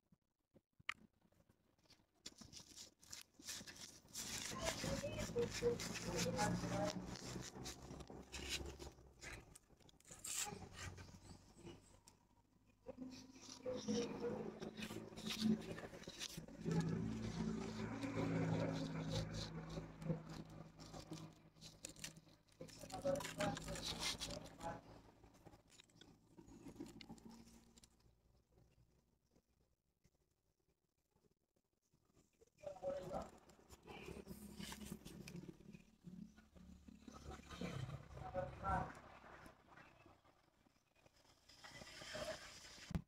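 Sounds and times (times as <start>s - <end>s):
plastic pot crackling and clicking: 2.2s - 12.2s, 13.1s - 24.9s.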